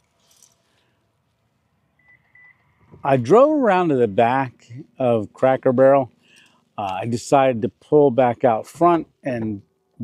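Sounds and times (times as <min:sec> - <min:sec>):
short electronic beeps: 0:02.0 - 0:02.8.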